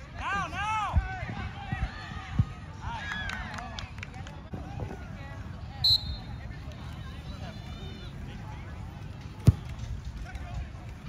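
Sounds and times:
faint voices: 0.1 - 11.0
soccer ball kicked thump: 9.4 - 9.8.

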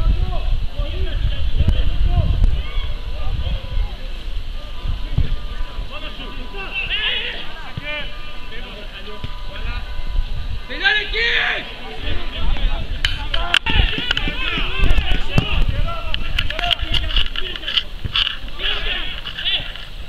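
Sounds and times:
players and onlookers shouting: 0.0 - 19.8.

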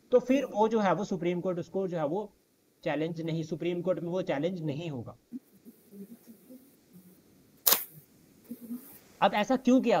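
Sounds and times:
sharp click: 7.6 - 8.0.

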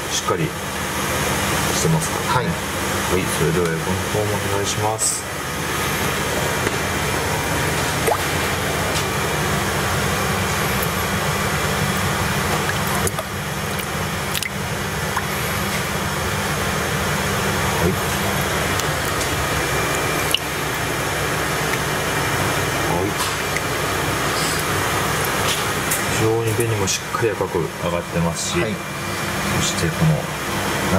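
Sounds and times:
background hiss and hum: 0.0 - 30.9
water sloshing and dripping: 5.6 - 26.6.

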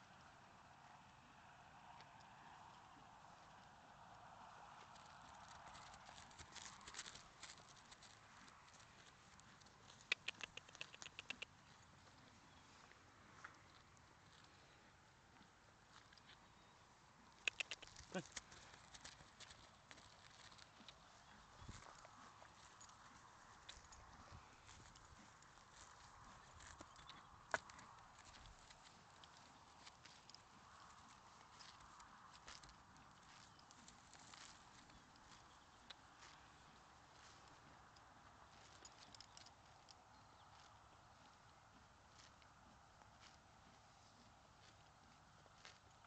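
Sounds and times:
hoofbeats on grass: 0.0 - 46.0
sharp clicks: 10.0 - 11.6, 17.4 - 18.2.

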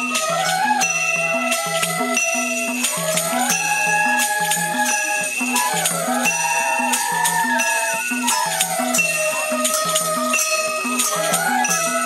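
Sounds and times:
bamboo flutes playing: 0.0 - 12.0.

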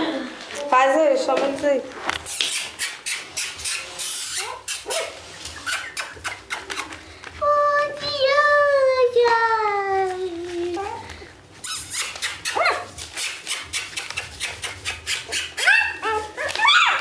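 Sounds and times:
paws clicking on newspaper: 1.2 - 17.0
puppies whining: 2.2 - 7.1, 10.7 - 17.0.

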